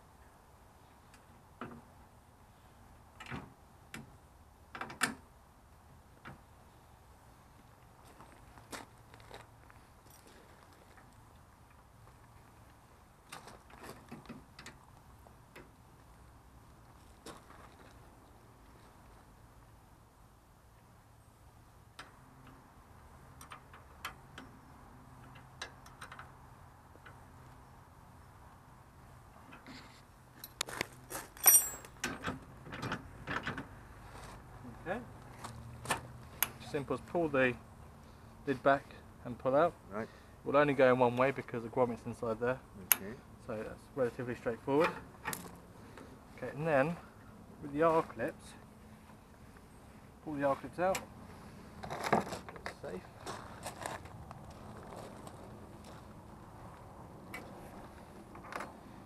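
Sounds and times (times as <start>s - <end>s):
metal hitch clicks and clanks: 30.4s - 33.7s.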